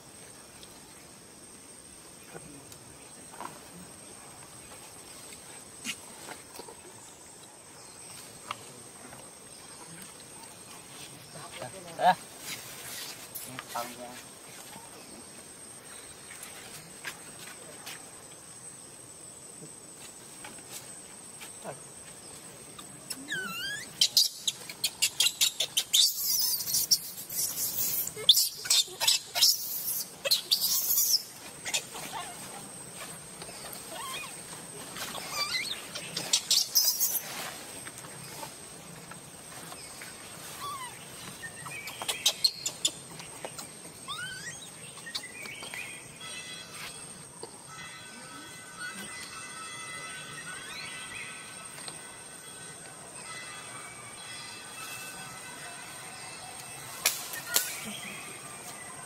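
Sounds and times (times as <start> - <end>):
high insect drone: 0.0 - 59.0
high rising squeaks: 23.2 - 25.4.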